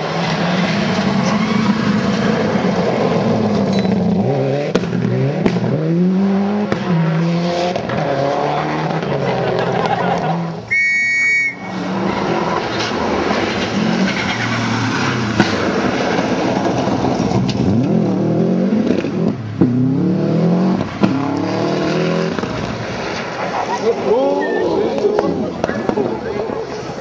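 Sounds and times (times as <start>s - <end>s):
rally car engine revving: 0.0s - 10.7s, 11.5s - 26.8s.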